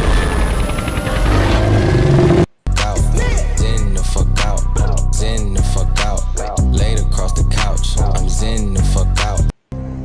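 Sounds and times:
film music: 0:00.0 - 0:06.6
heavy low rumble effects: 0:00.0 - 0:09.1.

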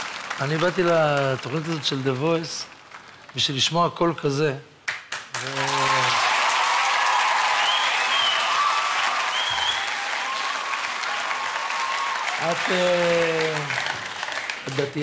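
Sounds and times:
audience clapping: 0:00.0 - 0:03.8, 0:04.8 - 0:15.0.

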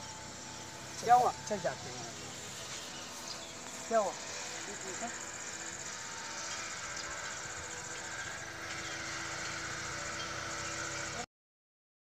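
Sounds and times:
insects trilling: 0:00.0 - 0:11.3
low mechanical hum: 0:00.0 - 0:11.3.

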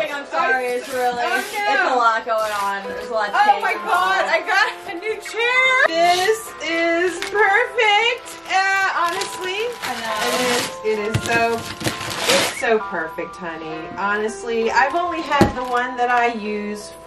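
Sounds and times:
music playing: 0:00.0 - 0:17.0
wrapping paper ripping: 0:00.6 - 0:03.7, 0:08.2 - 0:12.6.

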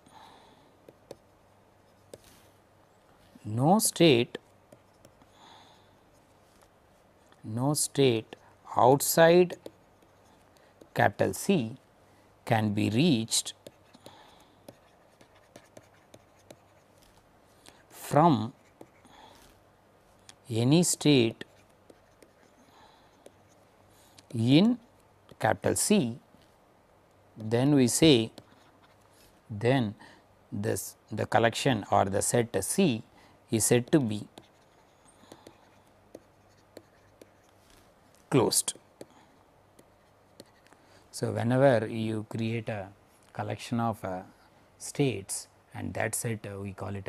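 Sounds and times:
stylus writing on a tablet: 0:00.8 - 0:03.0, 0:03.8 - 0:05.3, 0:07.0 - 0:11.8, 0:12.8 - 0:17.2, 0:18.0 - 0:19.6, 0:20.7 - 0:26.0, 0:27.4 - 0:29.1, 0:33.6 - 0:40.7.

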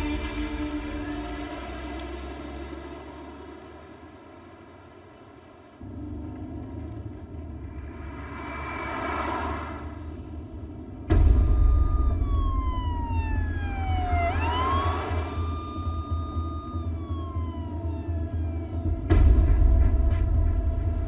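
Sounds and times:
car engine and road noise: 0:00.0 - 0:21.0
whoosh: 0:07.6 - 0:12.8.

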